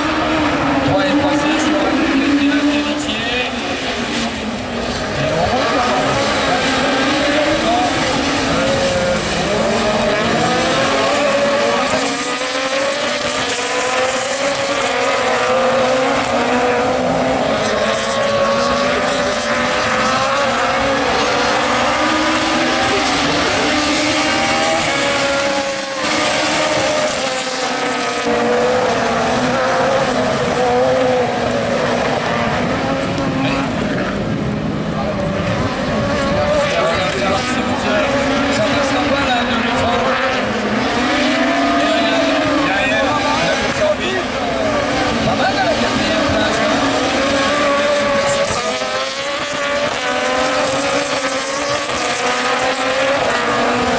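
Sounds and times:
racing car engines revving: 0:00.0 - 0:53.9.

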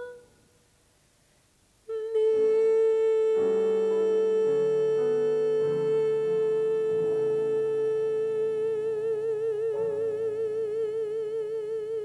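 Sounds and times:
woman singing long note: 0:00.0 - 0:00.3, 0:01.9 - 0:12.0
soft musical accompaniment: 0:01.8 - 0:12.0.

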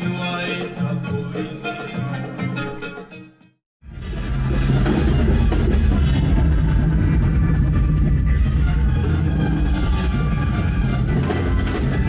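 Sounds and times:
live band playing amplified music: 0:04.0 - 0:12.0.

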